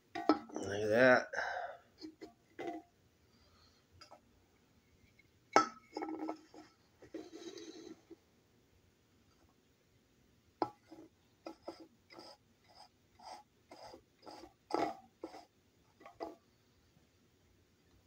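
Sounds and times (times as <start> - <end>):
cans scraping and clinking: 0.1 - 0.7, 2.0 - 2.8, 5.1 - 8.2, 10.6 - 16.4.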